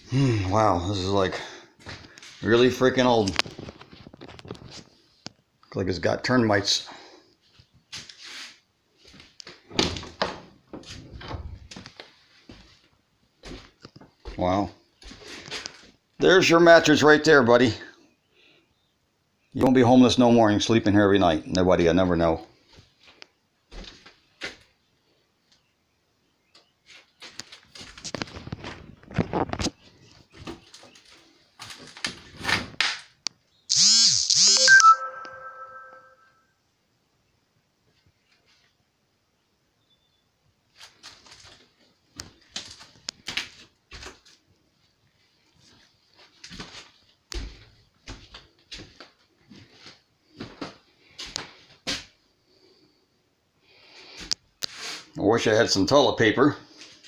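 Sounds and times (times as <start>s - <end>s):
phone notification jingle: 34.6s - 36.4s.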